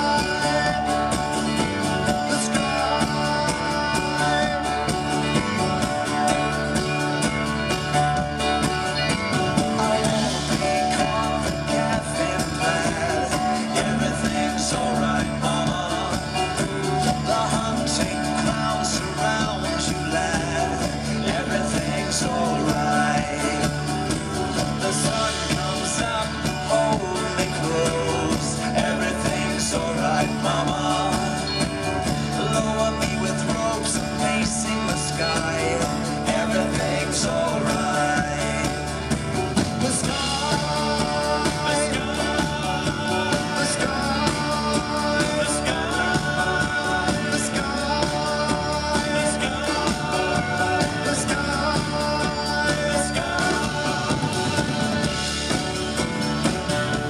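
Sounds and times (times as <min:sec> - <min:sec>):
live rock band playing: 0:00.0 - 0:57.0.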